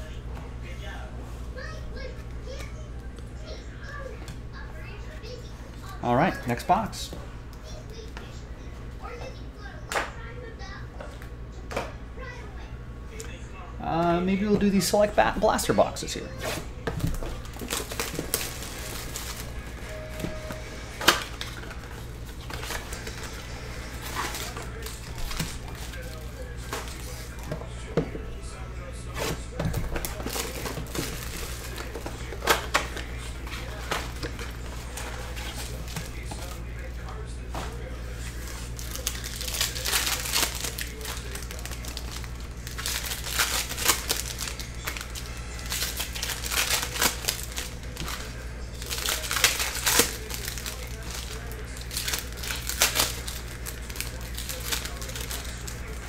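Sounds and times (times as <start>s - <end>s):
wrappers crinkling and tearing: 14.8s - 27.5s, 29.1s - 56.0s.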